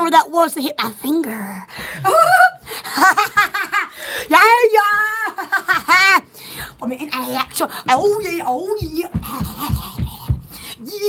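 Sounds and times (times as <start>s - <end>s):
woman squealing: 2.0s - 2.6s
woman laughing: 5.2s - 6.2s.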